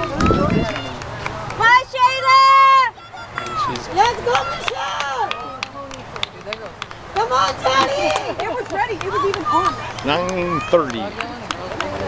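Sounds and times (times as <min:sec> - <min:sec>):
spectators shouting encouragement: 0:00.0 - 0:06.1, 0:07.1 - 0:12.0.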